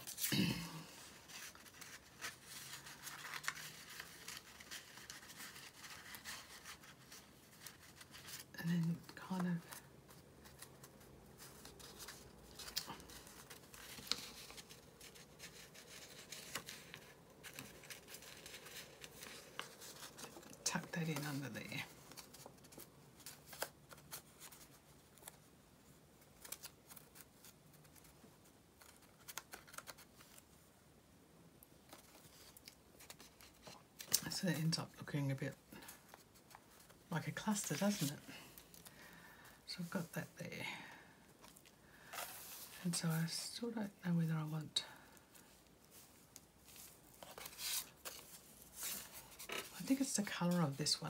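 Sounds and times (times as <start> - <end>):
paper rustling: 0.0 - 30.5, 35.8 - 39.1, 41.4 - 43.4, 45.2 - 51.0.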